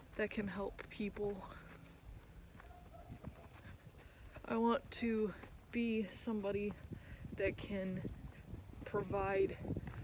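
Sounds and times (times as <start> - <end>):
soft footsteps on ground: 0.0 - 10.0
low wind rumble on microphone: 2.0 - 10.0.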